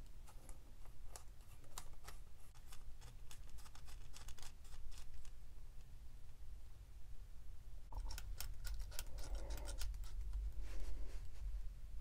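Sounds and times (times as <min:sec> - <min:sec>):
rustling: 0:07.9 - 0:11.8.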